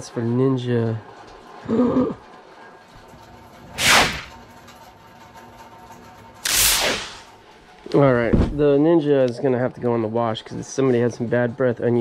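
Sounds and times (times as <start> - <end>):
person laughing: 1.7 - 2.2
swishing whooshes: 3.8 - 4.4.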